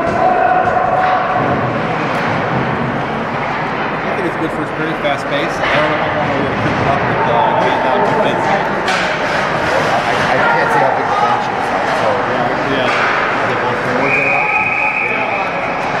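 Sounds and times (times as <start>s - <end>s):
spectators talking and calling out: 0.0s - 16.0s
referee's whistle: 14.0s - 15.6s.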